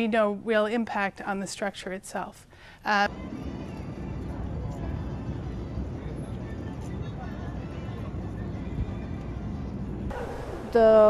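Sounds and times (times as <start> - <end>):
city street rumble: 3.1 - 11.0.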